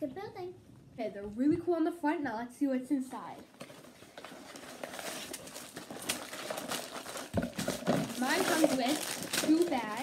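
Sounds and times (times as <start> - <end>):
cardboard tearing and crackling: 4.2 - 10.0.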